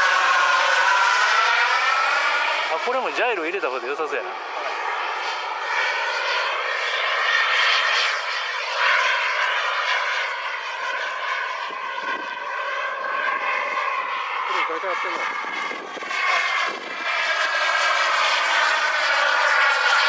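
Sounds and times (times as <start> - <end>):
model jet motor whine: 0.0 - 20.0.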